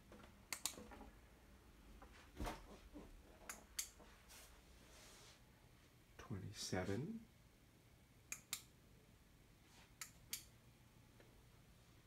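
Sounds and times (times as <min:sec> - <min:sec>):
faint sharp clicks: 0:00.5 - 0:00.8.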